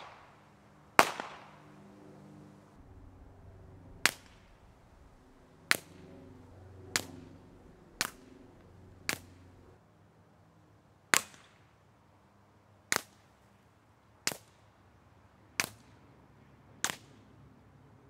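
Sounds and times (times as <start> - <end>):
suppressed pistol shots: 1.0 - 1.6.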